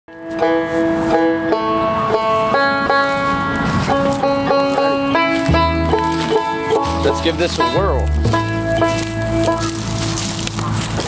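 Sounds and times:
banjo picking single notes: 0.1 - 10.9
low upright bass note: 0.4 - 11.0.

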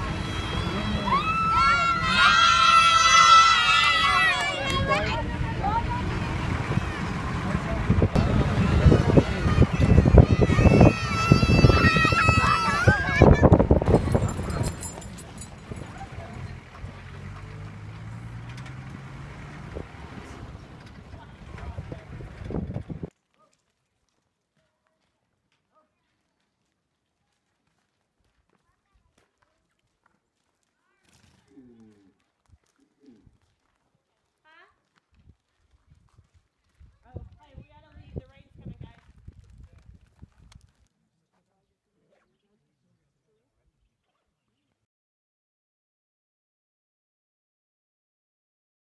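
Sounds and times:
people talking: 0.0 - 17.6, 20.1 - 22.4, 31.4 - 32.1, 37.0 - 39.0
vehicle rumble on dirt road: 0.0 - 23.2
knocks and rattles: 13.6 - 20.0.

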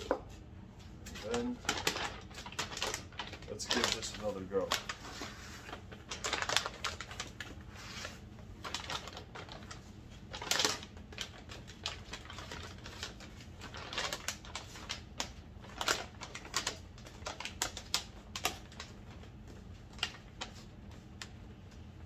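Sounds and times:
plastic bag crinkling: 1.1 - 21.2.

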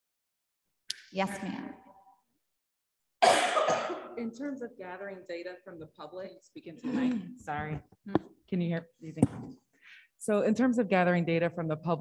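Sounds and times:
person coughing: 3.2 - 4.3
person speaking: 4.0 - 9.6.

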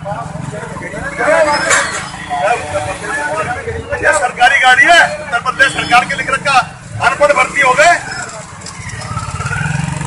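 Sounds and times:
motorcycles passing: 0.0 - 10.0
street traffic: 0.0 - 10.0
people arguing loudly: 0.7 - 8.3.

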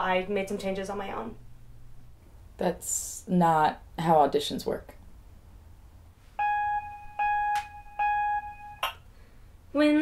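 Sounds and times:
short keyboard notes: 6.4 - 8.9.

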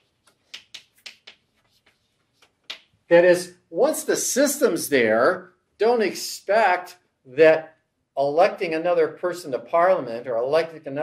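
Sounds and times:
chalk tapping and scratching: 0.0 - 2.9.

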